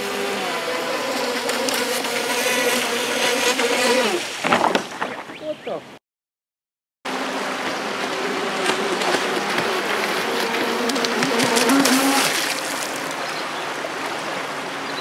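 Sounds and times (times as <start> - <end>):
electric boat motor whining: 0.0 - 4.2, 7.1 - 14.6
river rushing: 7.1 - 15.0.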